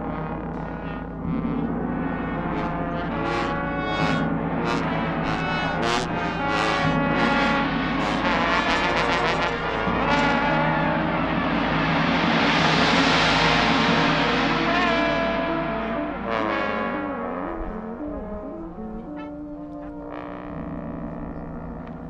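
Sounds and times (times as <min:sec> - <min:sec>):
brass ensemble playing: 0:00.0 - 0:22.0
gong: 0:00.0 - 0:22.0.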